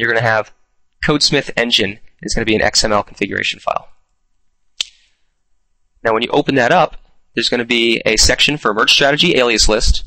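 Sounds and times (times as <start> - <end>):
sharp click: 4.8 - 5.1.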